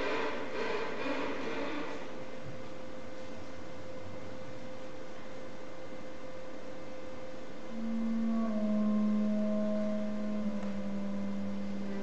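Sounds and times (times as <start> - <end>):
quiet chamber music: 7.7 - 12.0.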